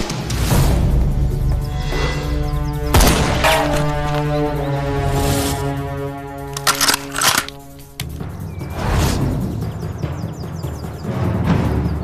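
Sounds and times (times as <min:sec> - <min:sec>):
tense orchestral music: 0:00.0 - 0:12.0.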